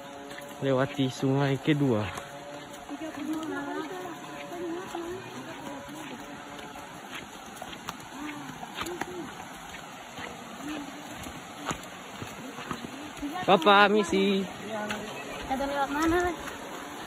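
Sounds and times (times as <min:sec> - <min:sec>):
faint voices: 0:00.0 - 0:13.4
flowing river water: 0:00.0 - 0:17.0.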